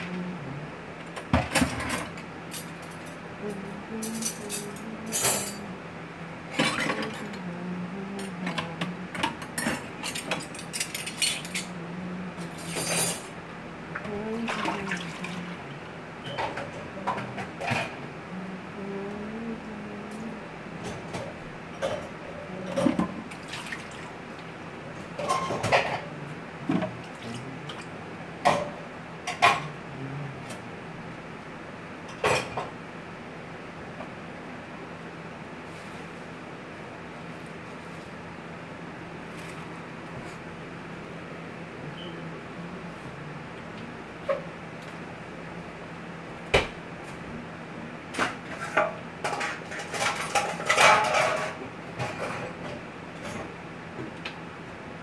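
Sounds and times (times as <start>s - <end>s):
low hum of indoor hall: 0.0s - 55.0s.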